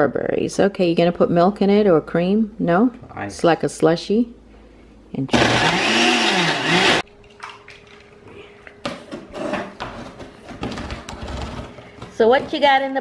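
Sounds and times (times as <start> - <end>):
blender running: 5.3 - 7.0
knocks and handling noises: 8.0 - 13.0.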